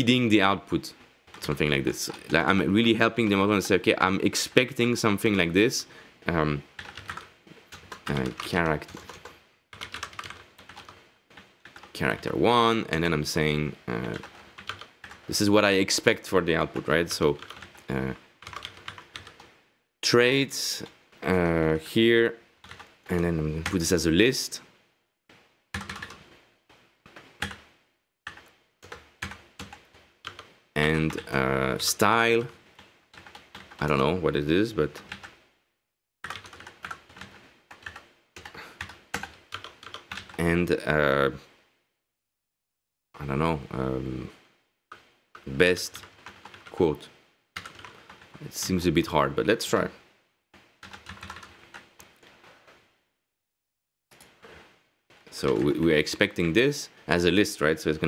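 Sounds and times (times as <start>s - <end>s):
computer keyboard typing: 1.3s - 2.7s, 6.8s - 12.4s, 13.9s - 15.4s, 16.7s - 19.5s, 22.6s - 23.8s, 25.7s - 26.2s, 27.1s - 27.7s, 28.3s - 31.4s, 32.2s - 34.0s, 34.9s - 35.4s, 36.2s - 40.4s, 44.9s - 46.8s, 47.6s - 48.4s, 50.6s - 52.8s, 55.4s - 55.7s.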